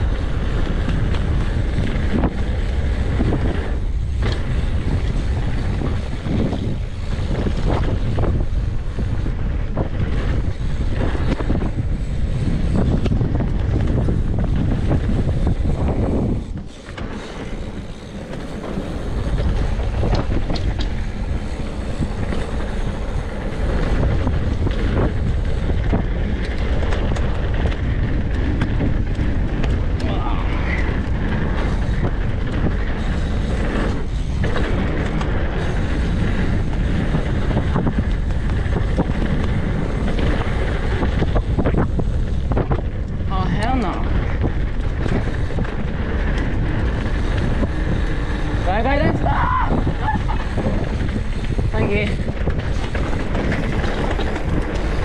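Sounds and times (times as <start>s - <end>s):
bike tyres rumbling and rattling: 0.0s - 55.0s
wind buffeting the microphone: 0.0s - 55.0s.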